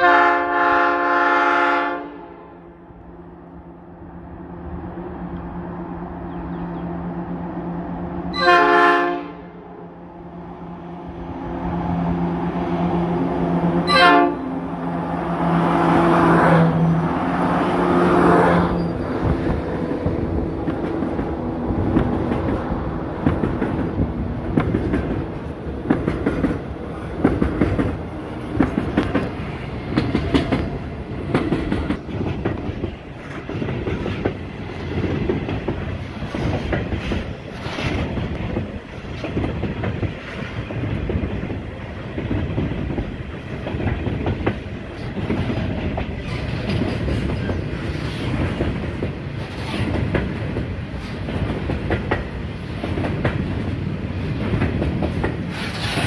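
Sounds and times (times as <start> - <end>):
freight train rolling past: 0.0 - 56.0
wheels clicking over rail joints: 18.8 - 56.0.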